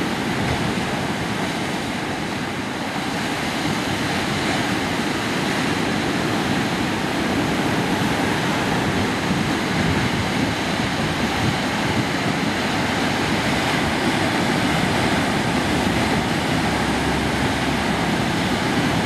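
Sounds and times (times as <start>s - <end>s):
waves breaking on shore: 0.0s - 19.0s.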